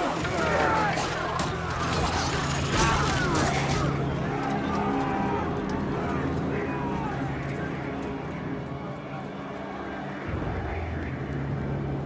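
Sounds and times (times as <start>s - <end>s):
rumble of fighting: 0.0s - 12.0s.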